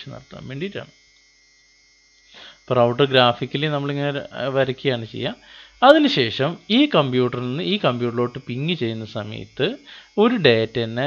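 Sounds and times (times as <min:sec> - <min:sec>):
man talking: 0:00.0 - 0:00.9, 0:02.7 - 0:11.0
faint mains hum: 0:00.0 - 0:11.0.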